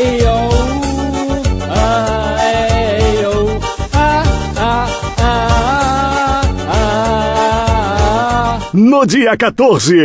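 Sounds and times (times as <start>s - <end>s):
backing track with steady beat: 0.0s - 8.8s
man singing held vowels: 0.0s - 8.8s.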